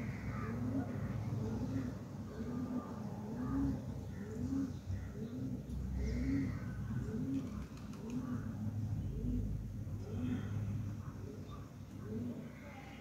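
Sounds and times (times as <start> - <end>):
bird cooing: 0.0 - 13.0.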